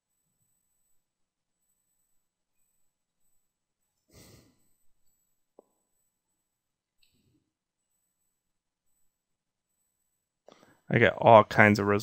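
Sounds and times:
person exhaling into microphone: 0:04.1 - 0:04.6.

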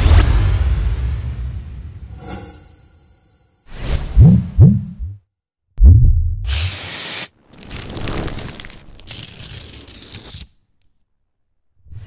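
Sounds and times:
whoosh: 0:00.0 - 0:04.3
deep thuds rising in pitch: 0:05.8 - 0:06.5.

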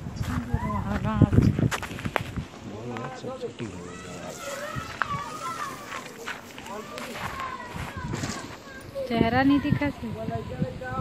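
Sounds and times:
people talking indistinctly: 0:02.5 - 0:11.0.

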